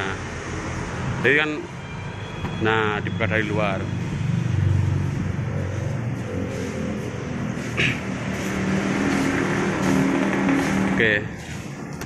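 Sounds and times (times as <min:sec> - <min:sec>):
vehicle engine rumbling: 0:02.4 - 0:12.0.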